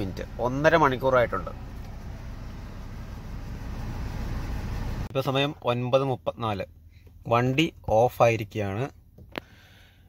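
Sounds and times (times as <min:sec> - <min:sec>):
diesel engine idling: 0:00.0 - 0:05.1.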